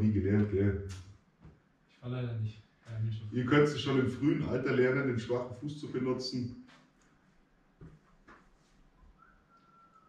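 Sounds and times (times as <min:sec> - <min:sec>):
faint thin whistle-like note: 0:09.1 - 0:10.0.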